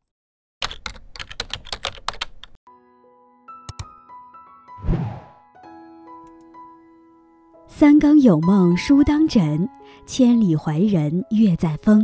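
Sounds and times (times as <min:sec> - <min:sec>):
keyboard typing: 0:00.6 - 0:02.6, 0:03.7 - 0:03.9.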